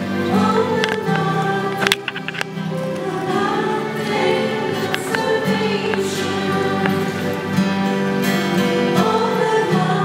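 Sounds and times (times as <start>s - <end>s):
acoustic guitar chords: 0.0s - 10.0s
person singing a hymn: 0.0s - 10.0s.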